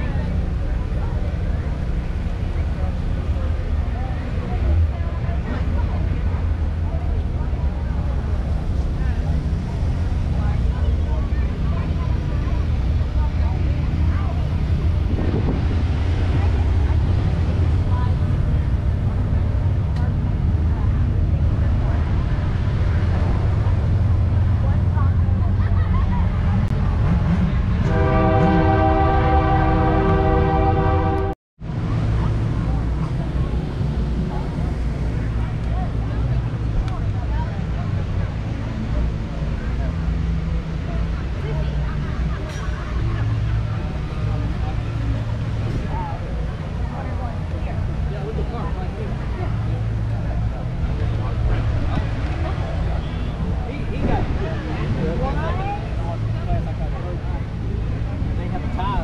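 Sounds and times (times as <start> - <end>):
crowd chatter: 0.0 - 59.0
low outdoor rumble: 0.0 - 59.0
horn sounding a chord: 27.8 - 31.4.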